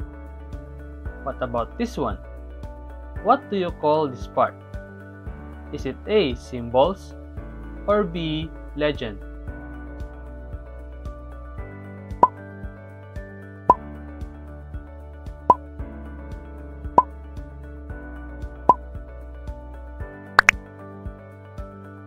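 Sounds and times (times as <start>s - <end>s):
plop sound: 20.4s - 20.6s.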